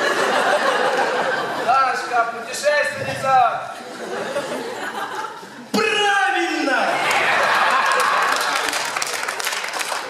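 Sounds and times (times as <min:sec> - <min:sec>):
audience applauding: 0:07.0 - 0:10.0.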